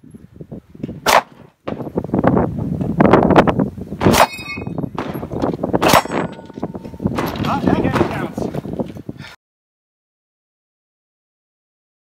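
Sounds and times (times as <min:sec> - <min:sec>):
pistol shots: 0:01.0 - 0:01.4, 0:04.0 - 0:08.1
steel targets ringing: 0:04.1 - 0:07.4.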